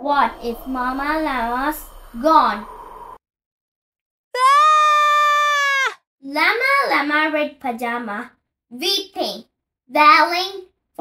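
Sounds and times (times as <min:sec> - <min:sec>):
narration: 0:00.0 - 0:02.9
high-pitched wailing cry: 0:04.4 - 0:06.0.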